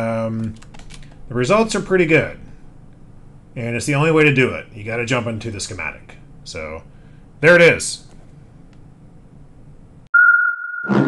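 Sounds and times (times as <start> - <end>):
high-pitched electronic tone: 10.2 - 11.0.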